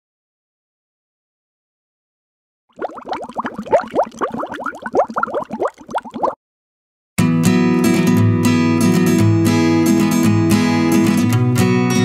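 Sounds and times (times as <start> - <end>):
underwater bubbling: 2.7 - 6.4.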